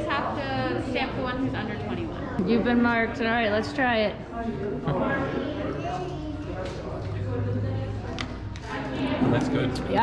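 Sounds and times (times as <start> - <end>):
crowd chatter: 0.0 - 10.0
steady low hum: 0.0 - 10.0.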